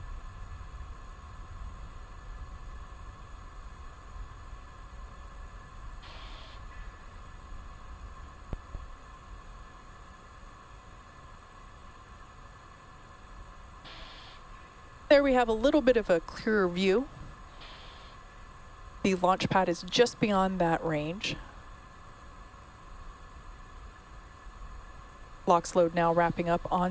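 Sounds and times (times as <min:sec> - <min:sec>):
faint steady hiss: 0:00.0 - 0:26.9
short hiss: 0:06.0 - 0:06.8, 0:13.9 - 0:14.5, 0:17.5 - 0:18.2
thin hum: 0:13.8 - 0:21.7.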